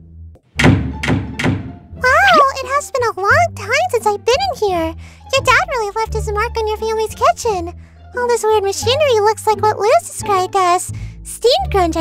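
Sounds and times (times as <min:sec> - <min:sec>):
faint background music: 0:00.6 - 0:12.0.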